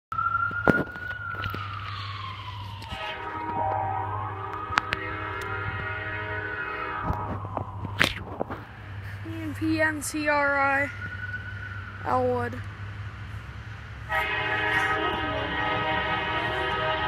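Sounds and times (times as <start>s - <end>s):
siren wailing: 0.1s - 12.7s, 14.1s - 17.0s
locomotive air horn: 2.8s - 7.5s, 14.1s - 17.0s.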